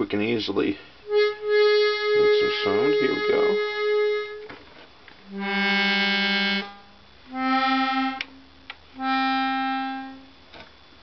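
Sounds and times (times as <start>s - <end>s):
accordion held chords: 1.0s - 10.4s.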